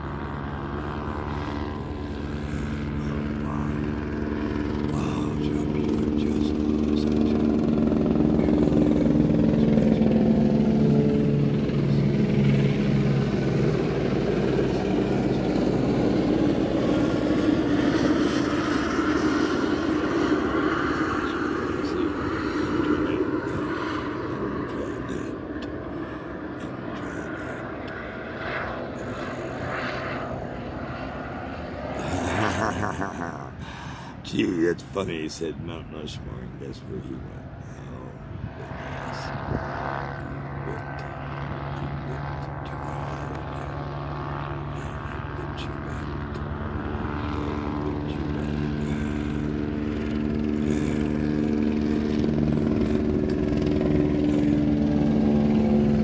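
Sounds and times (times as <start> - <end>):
low-flying aircraft engine drone: 0.0 - 56.0.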